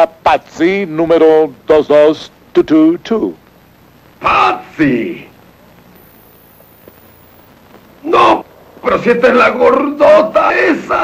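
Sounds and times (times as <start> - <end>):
background hiss: 0.0 - 11.0
high-pitched whine: 0.0 - 11.0.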